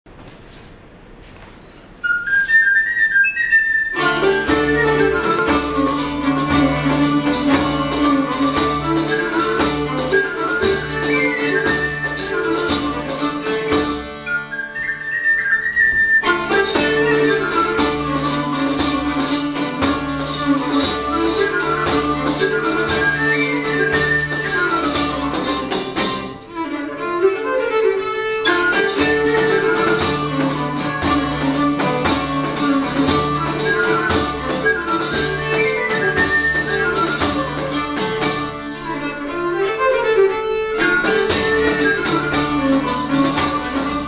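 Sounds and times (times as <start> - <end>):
bowed fiddle: 2.3 - 44.0
plucked strings: 3.9 - 44.0
frame drum dance beat: 4.1 - 14.2, 16.2 - 26.5, 28.6 - 39.0, 40.8 - 44.0.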